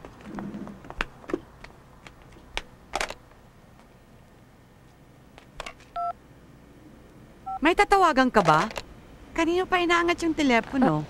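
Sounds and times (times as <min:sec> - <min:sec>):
phone keypad beep: 0:06.0 - 0:06.2.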